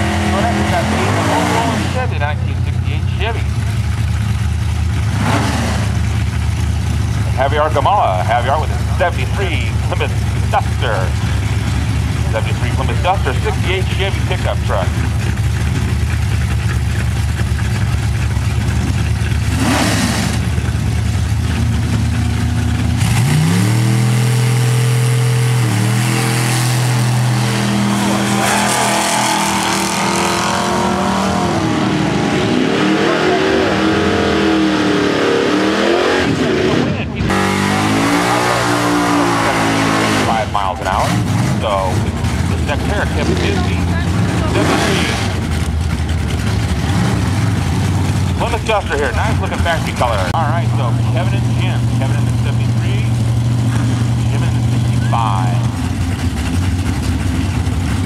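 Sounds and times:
drag car engines idling: 0.0s - 35.1s, 35.7s - 58.0s
drag cars accelerating: 0.0s - 58.0s.

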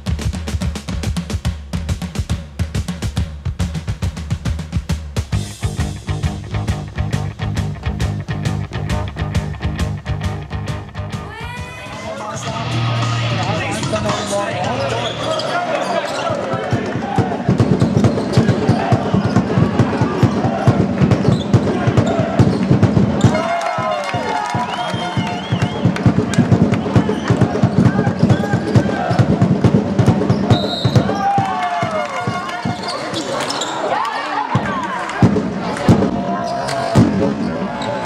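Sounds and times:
voices of players and spectators: 11.2s - 38.0s
sneakers squeaking on floor: 13.7s - 20.5s, 21.1s - 23.4s, 30.2s - 31.2s, 32.3s - 34.0s, 36.4s - 38.0s
basketball bouncing on court: 16.5s - 23.4s, 25.9s - 33.7s.

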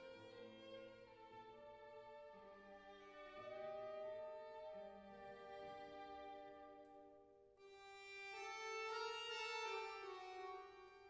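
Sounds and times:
violin: 0.0s - 11.0s
flute: 1.9s - 6.5s
accordion: 7.6s - 11.0s.

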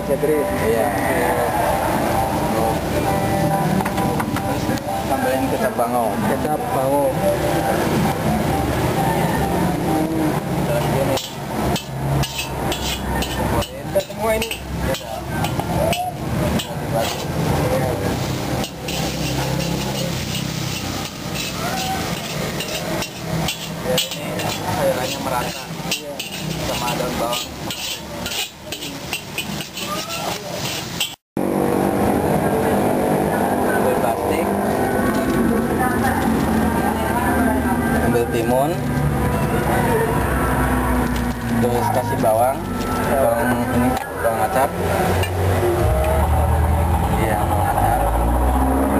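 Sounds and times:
steady background noise: 0.0s - 48.9s
metal spatula scraping wok: 10.6s - 31.2s, 44.8s - 45.6s.

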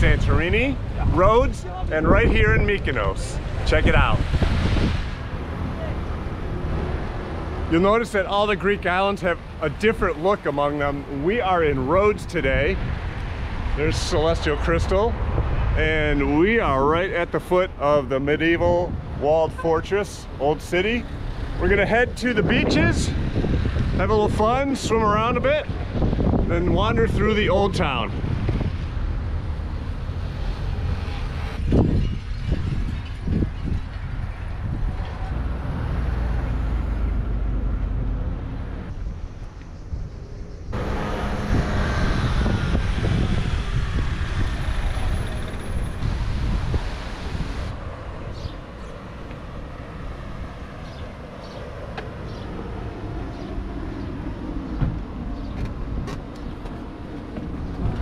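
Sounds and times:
traffic going by: 0.0s - 58.0s
wind rumbling on microphone: 0.0s - 58.0s.

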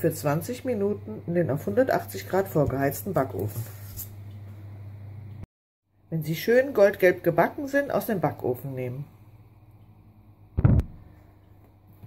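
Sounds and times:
loud low thump: 10.6s - 11.0s.

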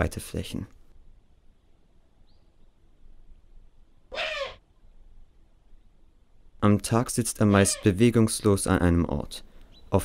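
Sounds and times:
raspy owl call: 4.1s - 4.6s, 7.5s - 8.0s.

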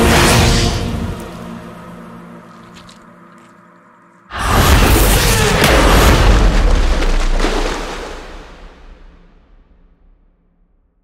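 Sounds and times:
dramatic music: 0.0s - 10.1s.

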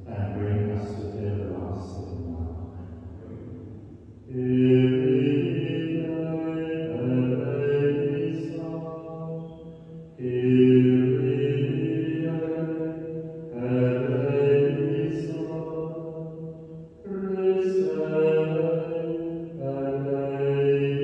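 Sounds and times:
man chanting: 0.0s - 3.6s, 4.2s - 16.4s, 17.0s - 21.0s.

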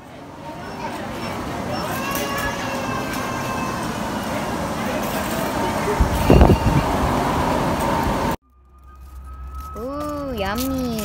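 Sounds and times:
traffic noise: 0.0s - 11.0s
shopping cart rolling: 0.5s - 11.0s.

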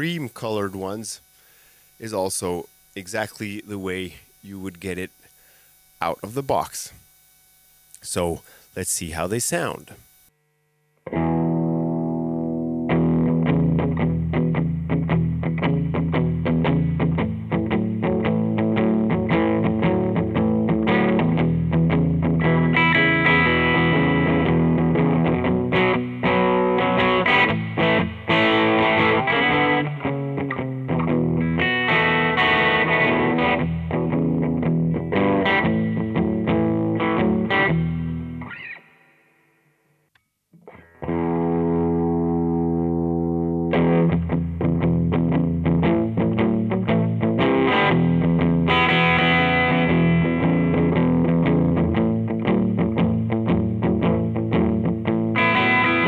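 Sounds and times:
electric guitar playing blues licks: 11.1s - 39.1s, 40.6s - 56.0s.

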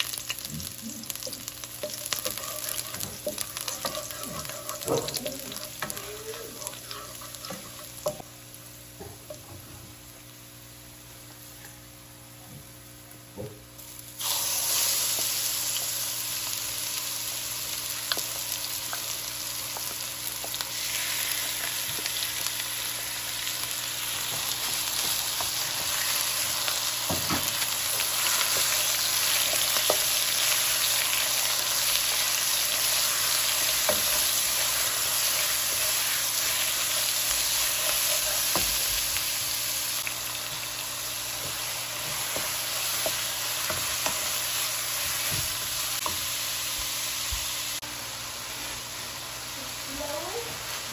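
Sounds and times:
chicken frying in oil: 0.0s - 8.2s
wooden spoon scraping pan: 1.8s - 8.0s.

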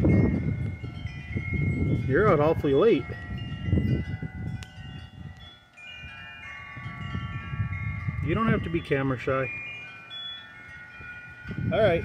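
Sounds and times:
wind chimes ringing: 0.0s - 12.0s.

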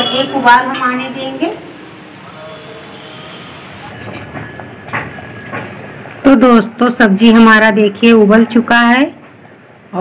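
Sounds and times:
curry bubbling at a boil: 1.1s - 10.0s.

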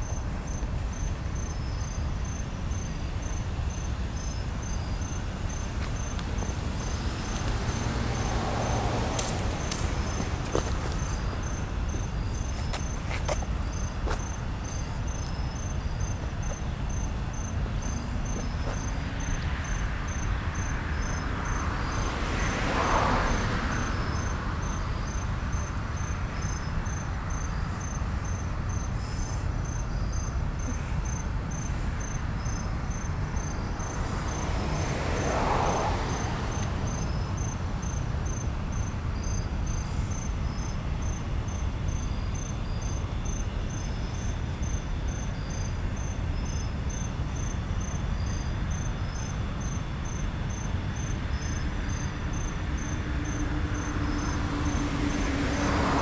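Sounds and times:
crickets chirping: 0.0s - 56.0s.

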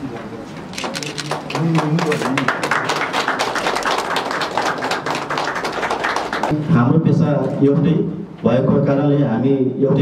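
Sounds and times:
people clapping: 0.8s - 6.6s.

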